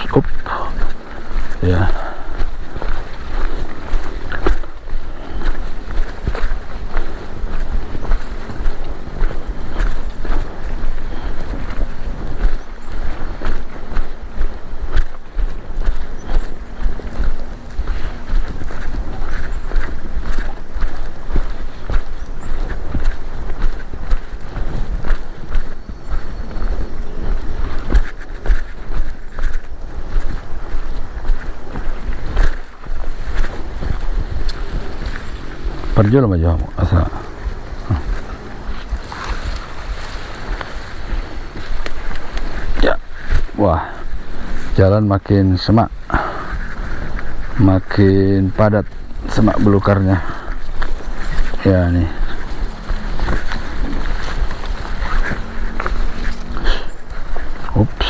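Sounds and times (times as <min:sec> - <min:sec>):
footsteps through tall grass: 0:00.0 - 0:58.0
wind rumbling on microphone: 0:00.0 - 0:58.0.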